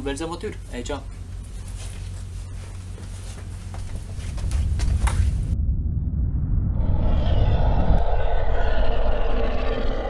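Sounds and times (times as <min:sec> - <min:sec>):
deep steady rumble: 0:02.8 - 0:10.0
mid-pitched drone: 0:05.5 - 0:10.0.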